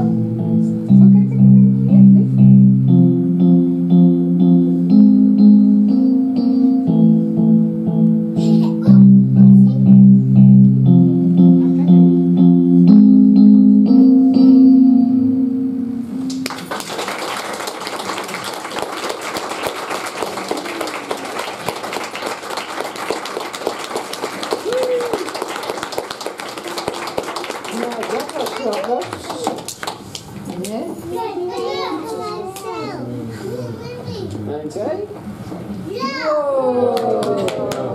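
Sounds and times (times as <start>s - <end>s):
slow guitar chords: 0.0s - 16.7s
audience applauding: 16.4s - 30.3s, 36.9s - 37.9s
children's voices: 31.0s - 34.4s, 35.9s - 36.8s.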